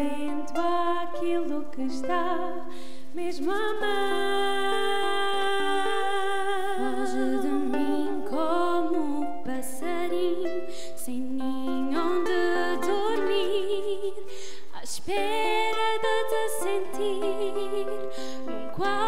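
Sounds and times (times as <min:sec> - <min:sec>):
plucked string instruments: 0:00.0 - 0:19.0.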